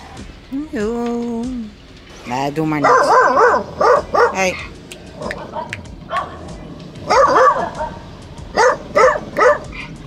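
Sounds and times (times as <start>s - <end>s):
dog barking: 2.8s - 6.4s, 7.1s - 9.9s.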